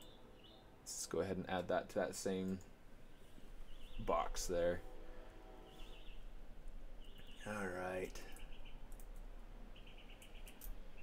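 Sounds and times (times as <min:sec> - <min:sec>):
faint clicks: 0:08.0 - 0:09.3, 0:10.1 - 0:10.8.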